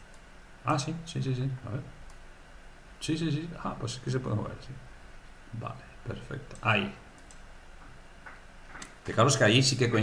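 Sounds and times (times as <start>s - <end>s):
low steady background hum: 0.0s - 10.0s
computer mouse clicks: 2.0s - 2.2s, 6.5s - 7.5s.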